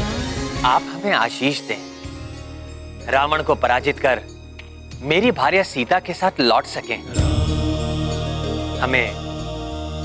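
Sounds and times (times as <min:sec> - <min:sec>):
man's voice: 0:00.5 - 0:02.0, 0:03.0 - 0:04.4, 0:05.0 - 0:10.0
chant-like sustained tones: 0:07.1 - 0:10.0.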